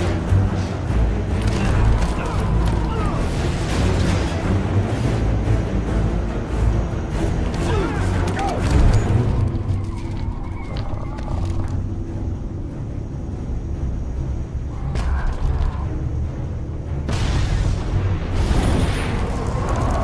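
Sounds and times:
dramatic music: 0.0 - 20.0.

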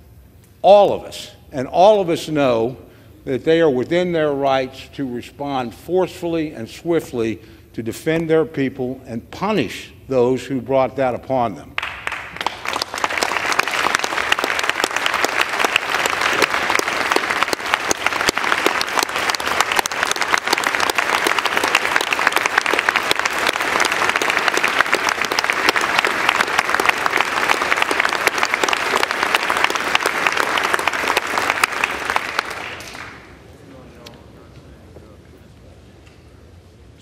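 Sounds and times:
crowd applauding: 11.8 - 33.4.

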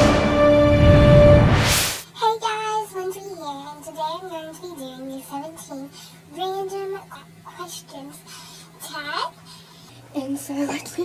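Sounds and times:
girl singing: 2.2 - 8.2.

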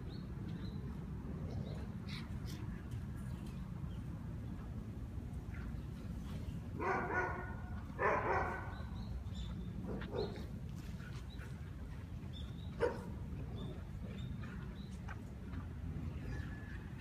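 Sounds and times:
dog barking: 6.8 - 8.8, 9.9 - 10.4, 12.8 - 13.1.

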